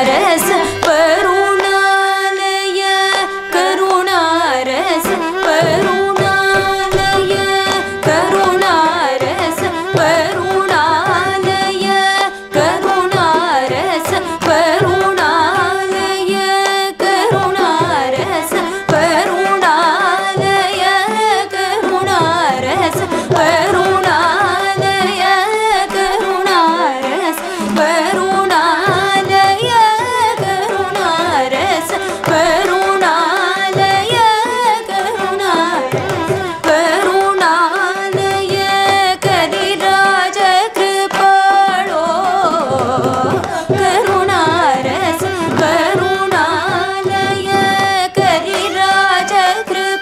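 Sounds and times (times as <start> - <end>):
violin: 0.0 - 50.0
women singing ornamented melody: 0.0 - 50.0.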